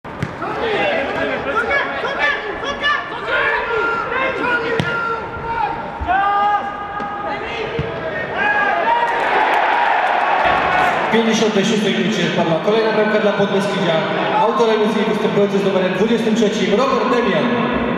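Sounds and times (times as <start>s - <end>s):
ball being kicked: 0.2s - 0.4s
players shouting: 0.2s - 11.6s
crowd cheering: 0.3s - 11.9s.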